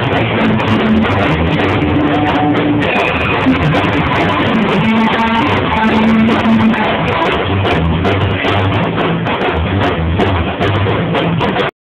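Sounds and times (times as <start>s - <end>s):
held electric guitar notes: 0.0s - 11.7s
live rock band playing: 0.0s - 11.7s.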